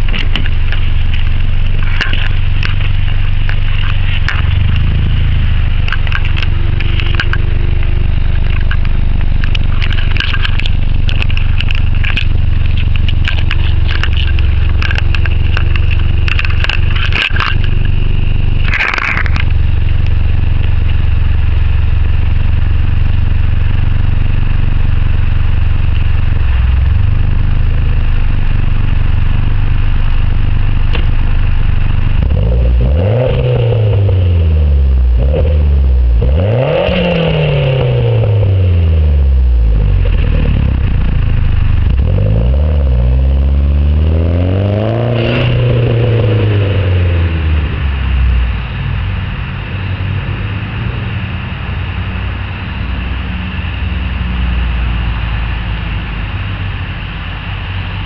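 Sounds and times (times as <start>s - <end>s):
car engine idling and revving: 0.0s - 58.0s
car pulling away: 0.0s - 58.0s.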